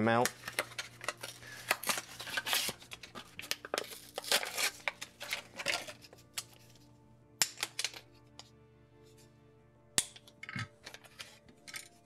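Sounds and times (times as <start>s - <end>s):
blister pouch crinkling and tearing: 0.3s - 6.0s.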